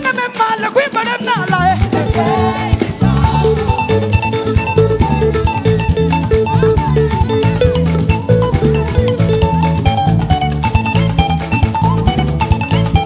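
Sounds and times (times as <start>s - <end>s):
upbeat praise band music: 0.0s - 13.0s
guitar repeating quick notes: 0.3s - 13.0s.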